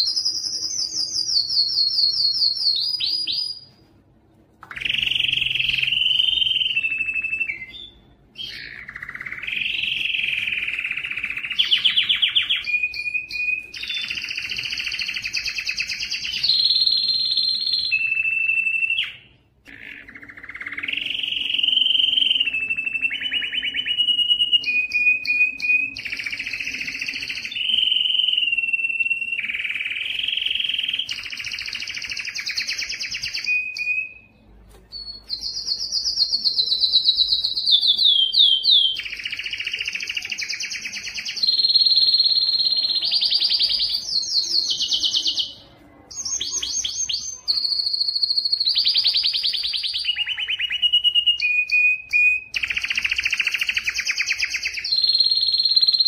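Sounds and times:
canary singing trills: 0:04.6 - 0:56.0.

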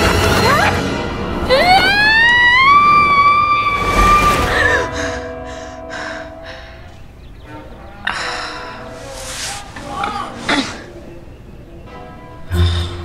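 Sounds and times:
woman screaming: 0:01.5 - 0:05.0.

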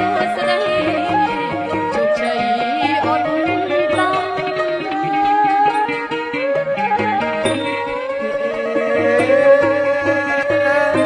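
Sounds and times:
woman singing through microphone: 0:00.0 - 0:05.9
traditional ensemble playing: 0:00.0 - 0:11.0.

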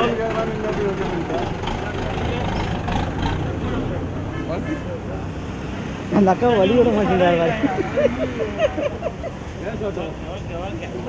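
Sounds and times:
diesel bus engine idling: 0:00.0 - 0:05.4
loud close talking: 0:00.0 - 0:11.0
voices: 0:00.0 - 0:11.0.

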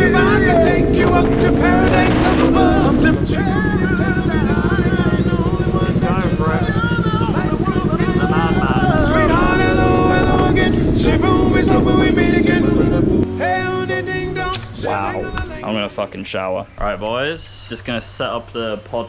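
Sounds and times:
motorcycle engine running: 0:00.0 - 0:13.2
song with singing: 0:00.0 - 0:16.0.

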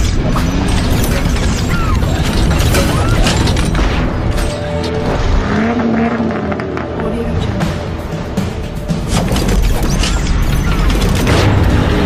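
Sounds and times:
car engine revving: 0:00.0 - 0:08.7.

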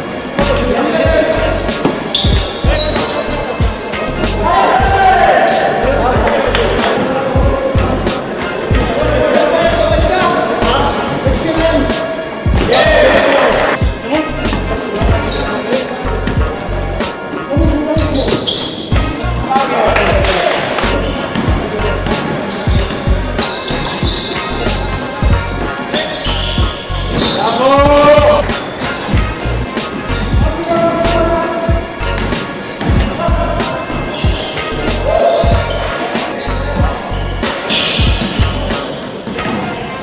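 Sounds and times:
players calling out: 0:00.4 - 0:39.5
basketball bouncing on wooden floor: 0:21.3 - 0:23.2.

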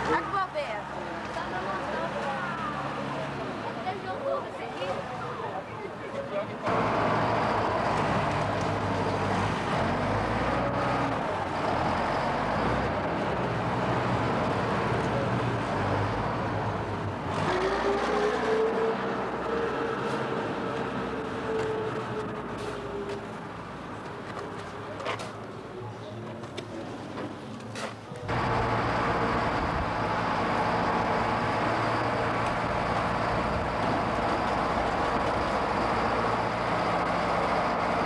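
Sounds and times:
diesel engine running: 0:06.7 - 0:24.0, 0:28.2 - 0:38.0.

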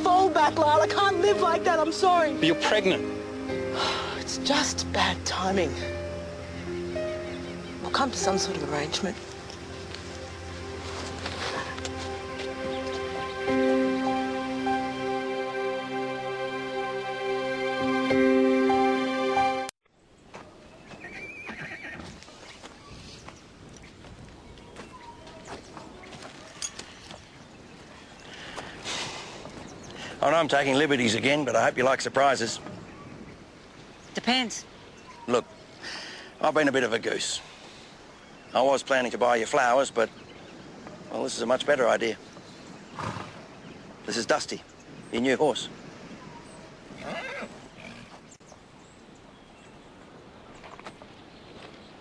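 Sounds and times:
horse whinnying: 0:21.0 - 0:22.2, 0:43.0 - 0:43.4, 0:47.0 - 0:48.1.

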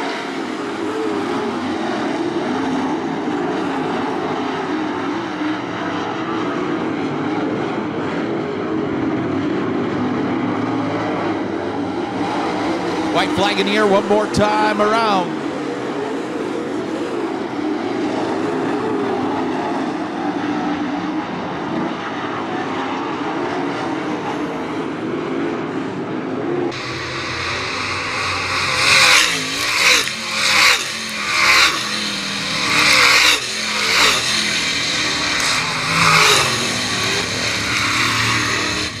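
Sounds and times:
distant race car engines: 0:00.0 - 0:39.0
race cars passing close by: 0:00.0 - 0:39.0.

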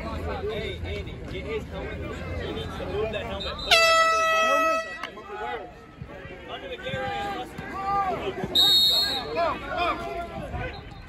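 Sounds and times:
air horn blast: 0:03.7 - 0:05.0.

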